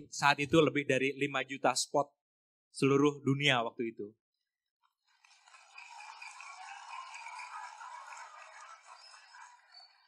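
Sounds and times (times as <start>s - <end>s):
audience applause: 5.1s - 10.0s.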